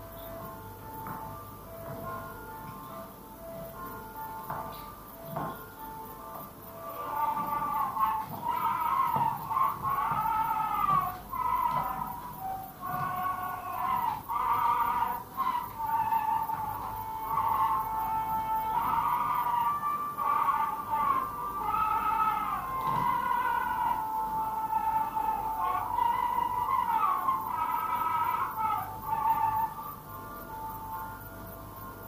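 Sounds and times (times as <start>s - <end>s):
old film soundtrack melody: 0.0s - 32.0s.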